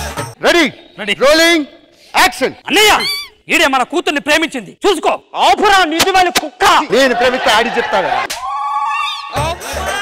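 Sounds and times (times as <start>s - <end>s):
man speaking: 0.4s - 8.2s.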